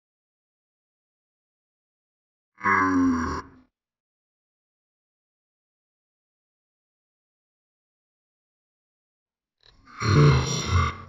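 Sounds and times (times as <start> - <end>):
low gruff grunt: 9.9 - 11.0.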